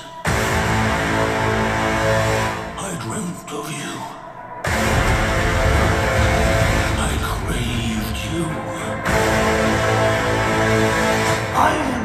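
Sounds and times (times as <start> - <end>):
horror trailer music: 0.0 - 12.0.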